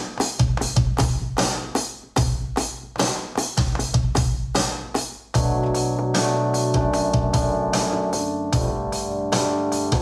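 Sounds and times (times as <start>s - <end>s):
drum machine beat: 0.0s - 10.0s
deep bass: 5.4s - 10.0s.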